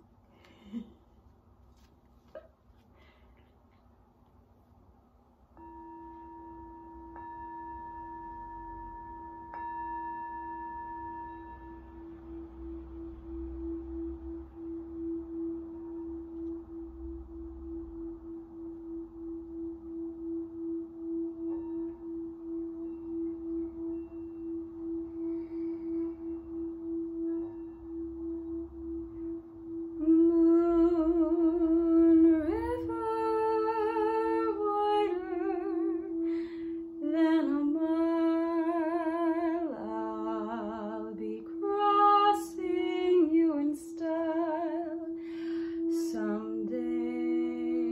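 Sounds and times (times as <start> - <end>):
singing bowl humming: 5.3 - 47.9
woman humming a melody: 11.2 - 47.9.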